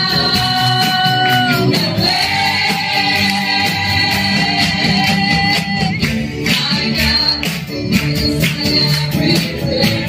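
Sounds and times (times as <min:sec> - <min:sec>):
band accompaniment with steady beat: 0:00.0 - 0:10.0
congregation singing: 0:00.0 - 0:10.0
woman singing into microphone: 0:00.0 - 0:10.0.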